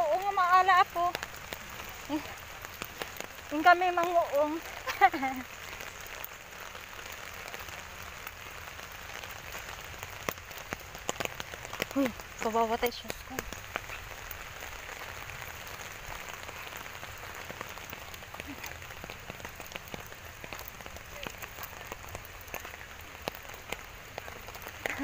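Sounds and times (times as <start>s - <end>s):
raindrops ticking on umbrella: 0.0s - 25.0s
steady rain falling: 0.0s - 25.0s.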